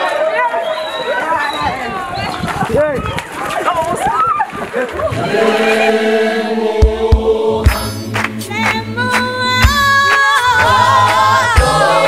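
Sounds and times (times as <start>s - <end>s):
choir holding a chord: 5.2s - 9.0s, 10.6s - 12.0s
low thump: 6.8s - 8.0s.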